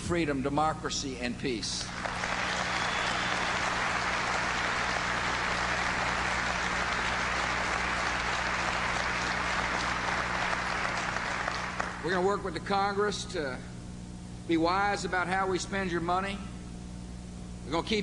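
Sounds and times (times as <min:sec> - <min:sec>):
large audience applauding: 0:01.9 - 0:12.2.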